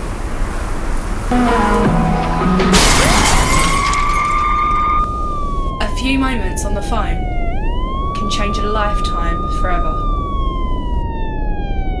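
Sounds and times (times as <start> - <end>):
siren tone sliding down: 1.3 - 12.0.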